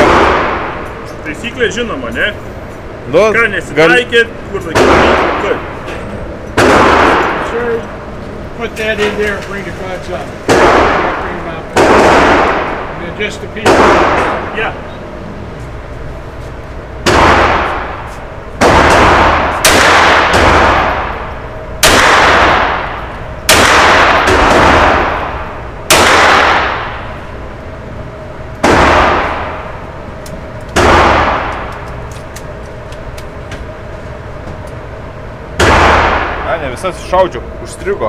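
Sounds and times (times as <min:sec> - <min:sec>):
pistol shots with echo: 0:00.0 - 0:00.8, 0:04.7 - 0:05.6, 0:06.6 - 0:07.8, 0:10.5 - 0:13.0, 0:13.6 - 0:14.6, 0:17.0 - 0:27.2, 0:28.6 - 0:29.7, 0:30.8 - 0:31.7, 0:35.6 - 0:36.5.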